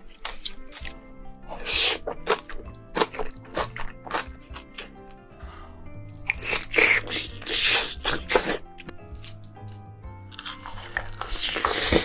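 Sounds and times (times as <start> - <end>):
crunchy chewing and biting: 0.0 - 5.0, 6.1 - 9.5, 10.3 - 12.0
background music: 0.0 - 12.0.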